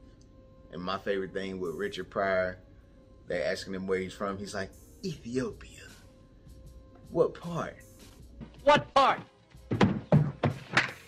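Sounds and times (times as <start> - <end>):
film music: 3.2 - 11.0
man speaking: 3.3 - 6.0, 8.6 - 9.3.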